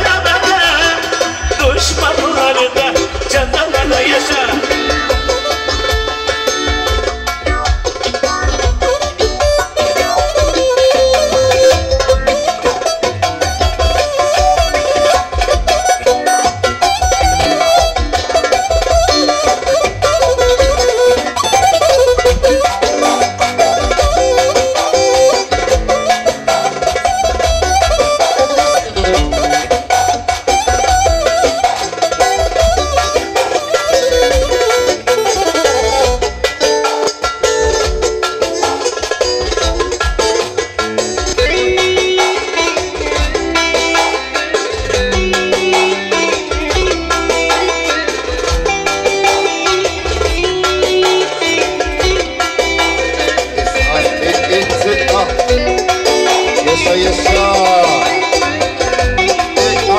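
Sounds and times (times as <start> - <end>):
pulsing bass beat: 0.0 - 36.8, 37.4 - 59.9
electric bass guitar: 0.0 - 59.9
keyboard melody: 0.0 - 59.9.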